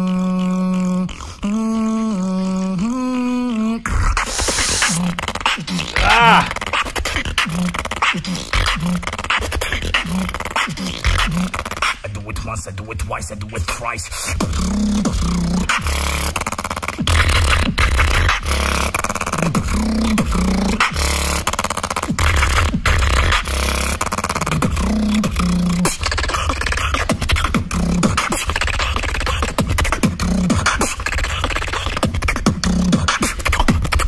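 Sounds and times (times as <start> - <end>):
beatbox bass line: 0.0 - 34.0
beatbox snare and hi-hat clicks: 3.9 - 34.0.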